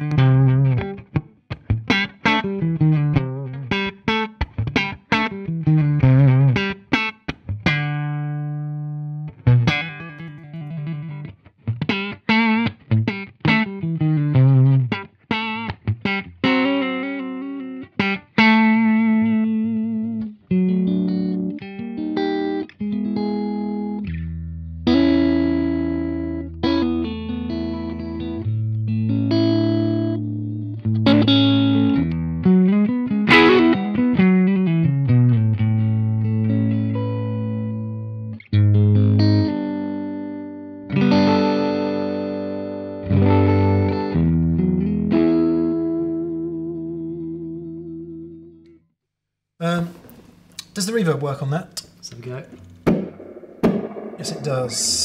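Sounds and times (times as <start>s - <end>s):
electric guitar notes and chords: 0.0s - 48.8s, 51.8s - 55.0s.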